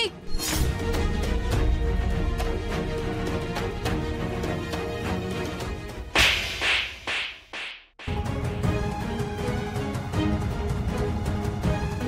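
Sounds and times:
slap sound effect with echoes: 6.2 - 8.2.

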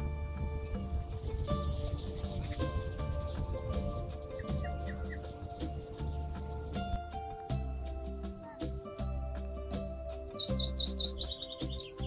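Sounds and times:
soft background music: 0.0 - 12.0
songbird singing: 0.0 - 12.0.

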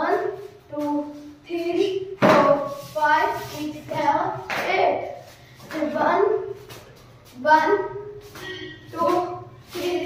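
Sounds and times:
person singing rhythm phrases: 8.4 - 10.0.

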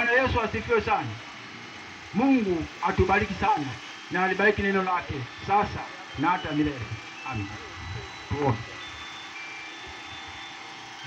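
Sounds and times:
faint high-pitched tones: 0.0 - 11.0
steady background noise: 0.0 - 11.0.

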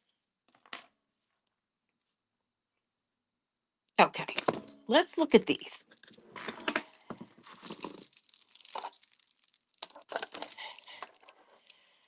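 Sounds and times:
metal jewelry jangling and clinking: 4.2 - 12.0.

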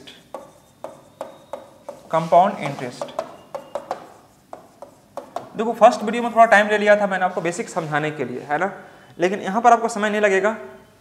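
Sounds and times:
chalk tapping and scraping on board: 0.0 - 6.3.

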